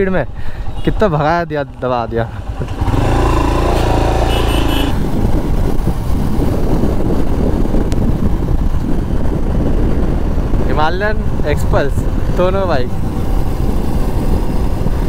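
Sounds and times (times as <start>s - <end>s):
wind rushing over microphone: 0.0s - 15.0s
motorcycle engine running: 0.2s - 9.4s.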